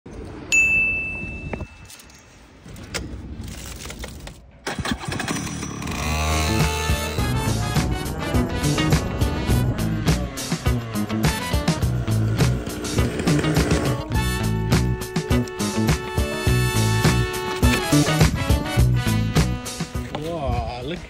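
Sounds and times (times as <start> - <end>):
go-kart engine running: 4.7 - 14.1
background music: 6.0 - 21.0.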